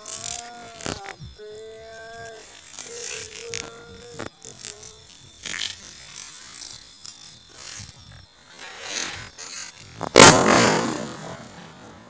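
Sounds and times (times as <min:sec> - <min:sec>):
firecracker fuse fizzing: 0:02.3 - 0:12.0.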